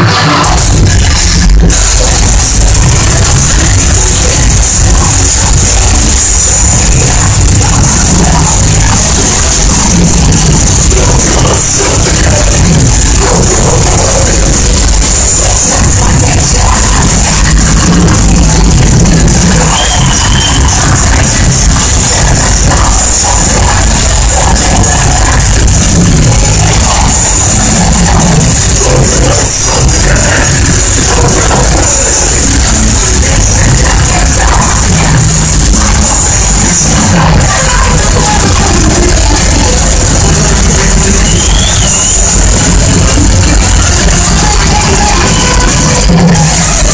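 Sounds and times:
live metal band playing: 0:00.0 - 0:46.9.

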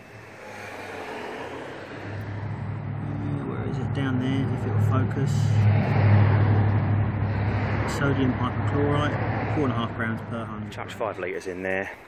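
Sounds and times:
vehicle engine humming: 0:00.0 - 0:11.4.

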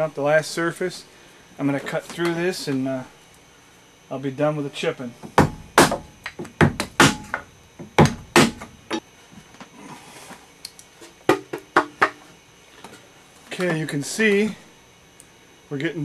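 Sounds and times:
mallet striking a chisel: 0:05.4 - 0:07.4.

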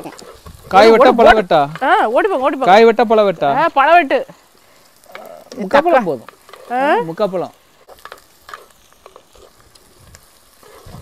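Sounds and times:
plant leaves rustling: 0:00.0 - 0:11.0.

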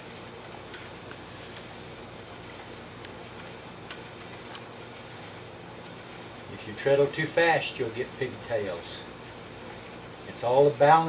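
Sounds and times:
spinning wheel whirring: 0:00.0 - 0:11.0.

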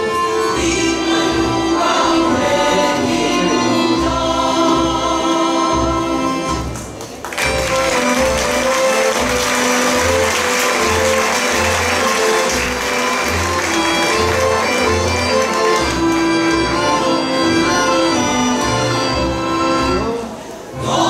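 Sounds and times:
folk band playing: 0:00.0 - 0:21.0
women's choir singing: 0:00.2 - 0:06.5, 0:20.7 - 0:21.0.

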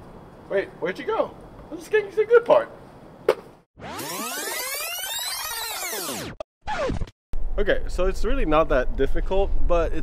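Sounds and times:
layered sweep effect: 0:03.8 - 0:06.3
downward-gliding drop: 0:03.8 - 0:07.0.

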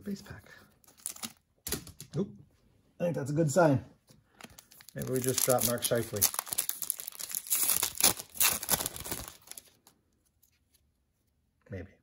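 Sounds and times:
wrapper tearing and crinkling: 0:00.8 - 0:01.4, 0:04.4 - 0:09.9.

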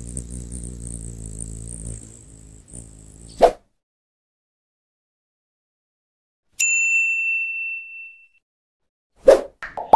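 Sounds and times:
bell ding: 0:06.6 - 0:08.4.

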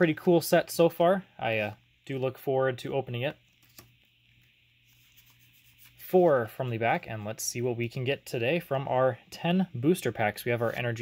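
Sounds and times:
trading cards rubbing: 0:03.4 - 0:07.0.

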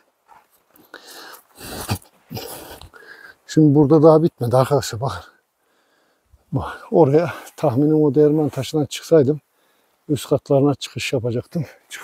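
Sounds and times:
person breathing hard: 0:00.8 - 0:03.4, 0:05.6 - 0:06.3.

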